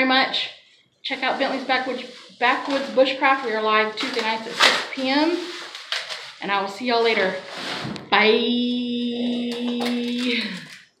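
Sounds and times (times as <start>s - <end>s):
person drawing out sing-song bye: 8.5s - 10.6s.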